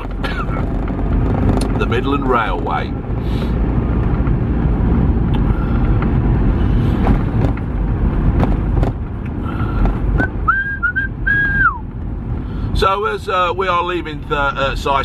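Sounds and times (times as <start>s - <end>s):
van engine and tyres rumbling: 0.0s - 15.0s
high whistling: 10.2s - 11.9s.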